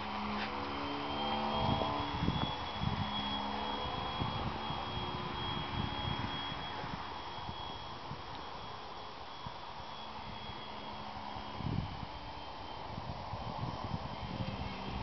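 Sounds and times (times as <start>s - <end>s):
model airplane motor buzzing: 0.0s - 15.0s
thin high whine: 0.0s - 15.0s.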